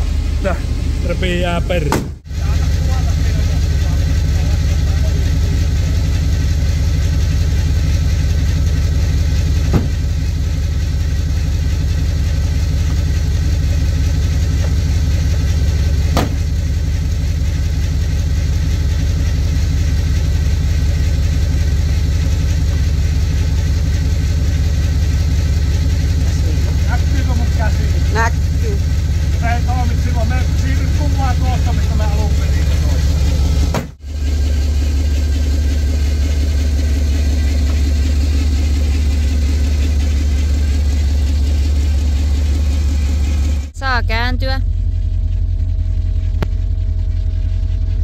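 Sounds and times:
car engine idling: 0.0 - 48.0.

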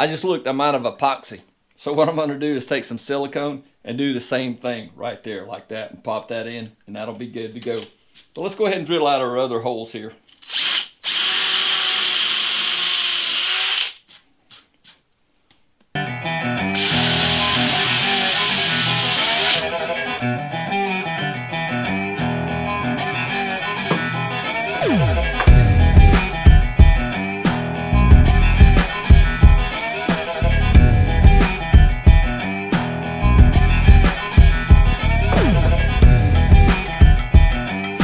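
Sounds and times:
cordless drill boring into wood: 10.3 - 14.0, 16.8 - 19.7
music with beat and guitar: 19.6 - 38.0.

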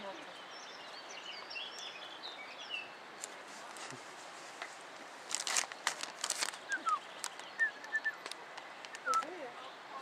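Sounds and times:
small birds chirping: 0.0 - 10.0
crinkling crackling rustle: 3.2 - 9.4.

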